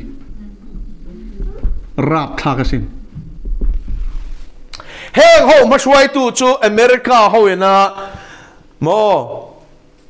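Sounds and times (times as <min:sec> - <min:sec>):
soft throbbing thuds: 0:00.0 - 0:04.6
low hum: 0:00.0 - 0:05.0
man talking: 0:02.0 - 0:03.0, 0:05.2 - 0:08.1, 0:08.8 - 0:09.7.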